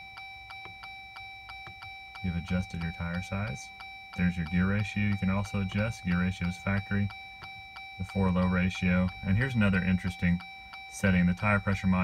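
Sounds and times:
rapid electronic ticking: 0.0 - 12.0.

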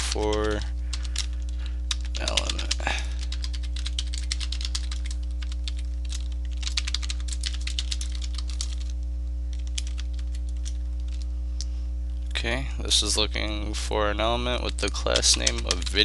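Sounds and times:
keyboard typing: 0.0 - 11.2, 14.7 - 16.0
low electrical hum: 0.0 - 16.0.

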